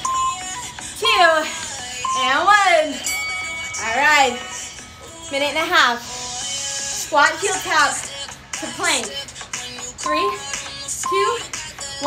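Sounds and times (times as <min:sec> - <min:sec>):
short electronic beeps: 0:00.0 - 0:00.6, 0:02.0 - 0:02.4, 0:10.0 - 0:11.5
background music: 0:00.0 - 0:12.0
woman calling out: 0:01.0 - 0:01.5, 0:02.1 - 0:03.0, 0:03.7 - 0:04.6, 0:10.1 - 0:11.6.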